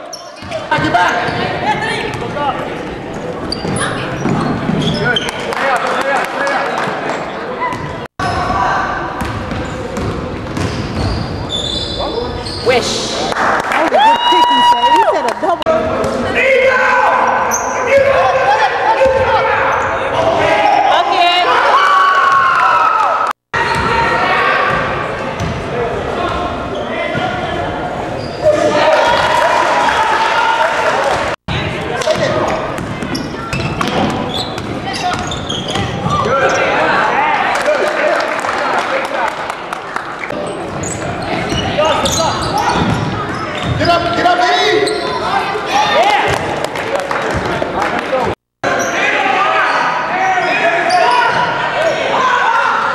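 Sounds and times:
sneakers squeaking: 0:00.0 - 0:05.6, 0:07.1 - 0:13.1, 0:17.4 - 0:18.2, 0:19.0 - 0:20.8, 0:23.6 - 0:29.2, 0:32.0 - 0:36.8, 0:40.2 - 0:46.6, 0:48.7 - 0:52.0
voices echoing in a hall: 0:00.0 - 0:52.9.

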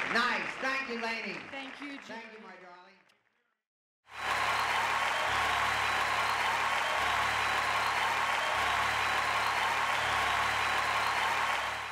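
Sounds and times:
audience applause: 0:00.0 - 0:02.5, 0:04.1 - 0:11.9.

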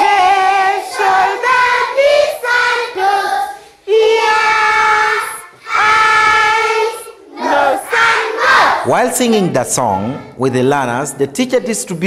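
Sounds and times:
children singing in unison: 0:00.0 - 0:08.9.

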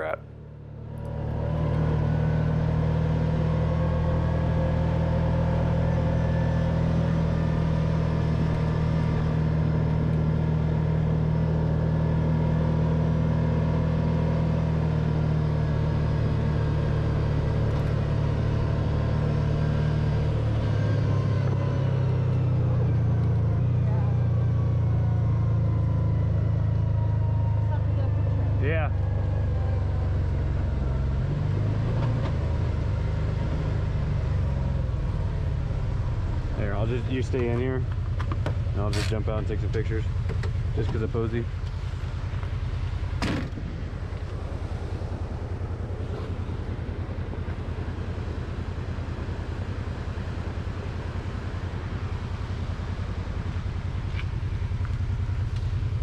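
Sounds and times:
vehicle engine running: 0:00.0 - 0:56.0.

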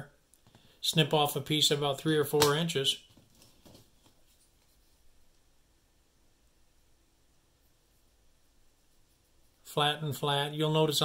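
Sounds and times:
soft handling of plastic connectors: 0:00.2 - 0:01.0, 0:03.0 - 0:05.7.

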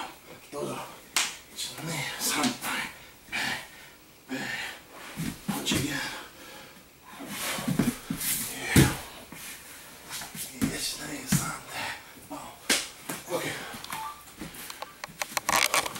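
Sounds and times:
bodies slapping on gym mats: 0:07.3 - 0:09.2, 0:12.6 - 0:13.3.

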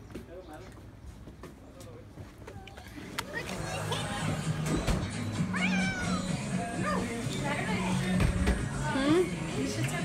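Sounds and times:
cat meowing: 0:05.5 - 0:06.3.

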